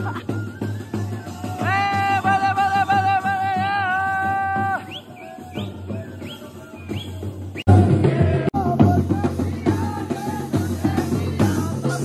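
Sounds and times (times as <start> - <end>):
band playing with drums: 0.0 - 12.0.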